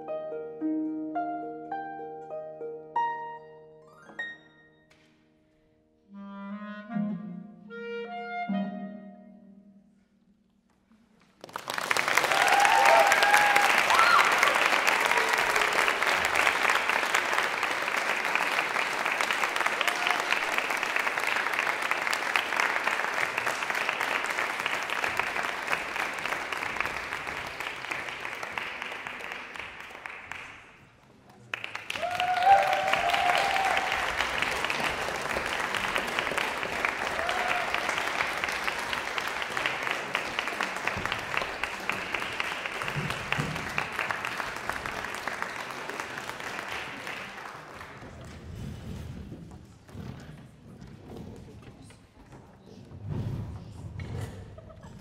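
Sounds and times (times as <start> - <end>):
audience applauding: 11.2 - 49.0.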